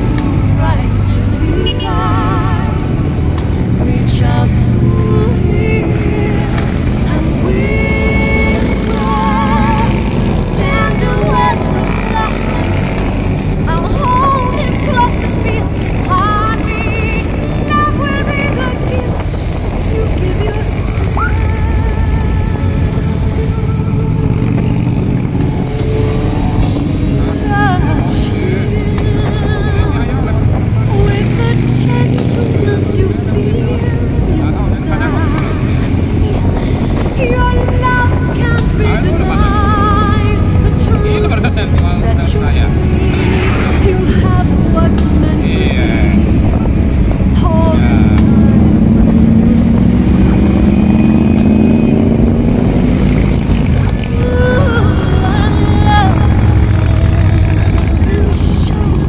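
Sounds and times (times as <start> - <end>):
motorcycles rumbling: 0.0 - 59.0
song with singing voice: 0.0 - 59.0
wind noise: 0.0 - 59.0.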